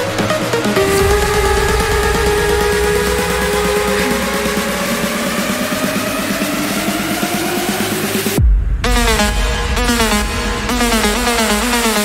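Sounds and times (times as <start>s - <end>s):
fast pulsing electronic rhythm: 0.0s - 12.0s
rising synth chord: 0.2s - 8.4s
deep bass: 0.2s - 12.0s.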